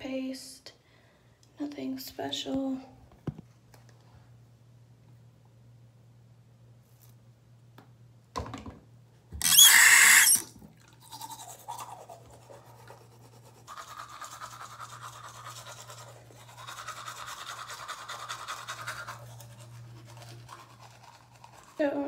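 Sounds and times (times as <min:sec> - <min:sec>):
toothbrush scrubbing teeth: 0:09.4 - 0:22.0.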